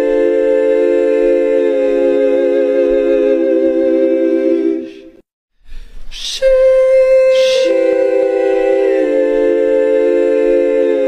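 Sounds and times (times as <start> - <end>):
choir-like voices holding a chord: 0.0 - 5.2, 6.4 - 11.0.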